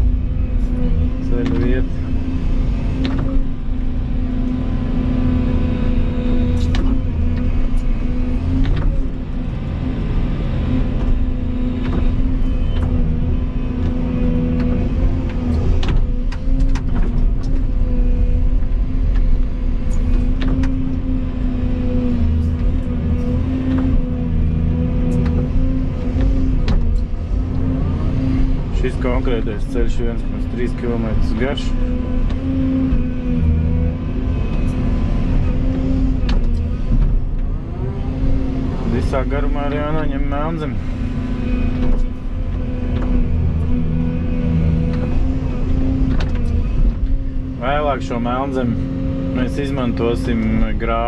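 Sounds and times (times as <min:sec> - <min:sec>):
excavator diesel engine running: 0:00.0 - 0:51.0.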